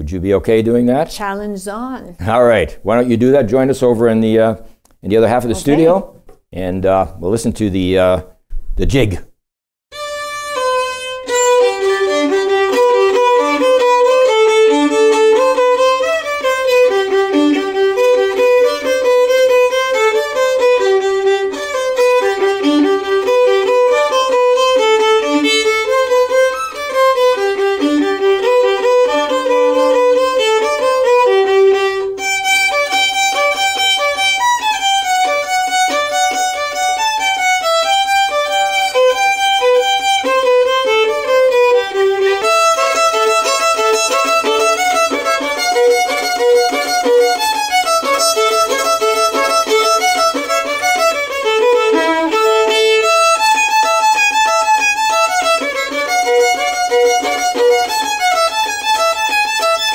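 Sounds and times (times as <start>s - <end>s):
solo violin playing fast tune: 9.9s - 59.9s.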